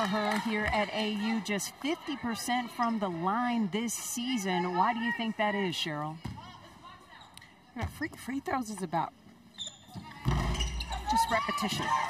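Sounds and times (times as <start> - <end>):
ball hitting rim: 10.2 - 11.9.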